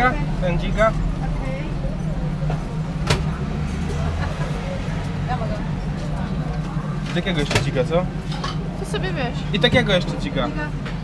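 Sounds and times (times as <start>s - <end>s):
low mechanical rumble: 0.0s - 11.0s.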